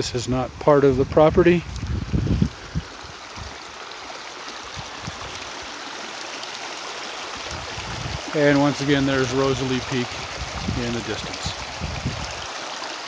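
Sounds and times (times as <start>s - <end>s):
water rushing over rocks: 1.6s - 13.0s.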